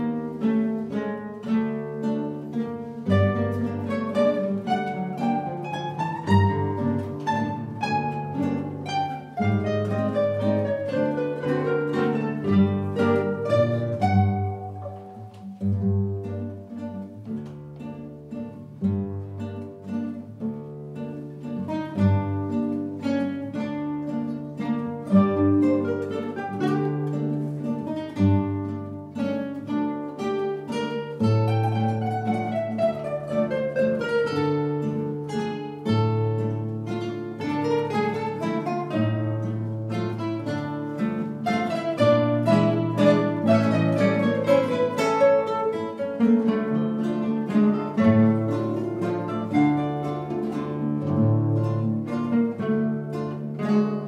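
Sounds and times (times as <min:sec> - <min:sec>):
classical guitar ensemble waltz: 0:00.0 - 0:54.0.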